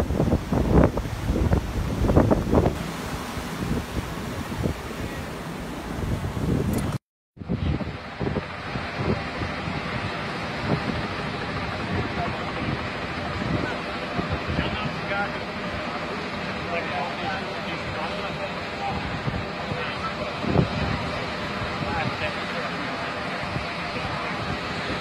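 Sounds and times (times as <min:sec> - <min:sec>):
wind buffeting microphone: 0:00.0 - 0:15.9, 0:17.7 - 0:25.0
surf washing on beach: 0:00.0 - 0:25.0.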